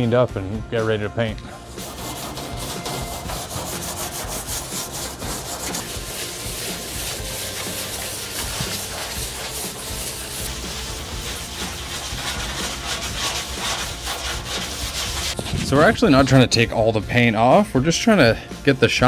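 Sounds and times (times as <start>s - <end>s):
sandpaper rubbing on painted metal: 1.5s - 16.6s.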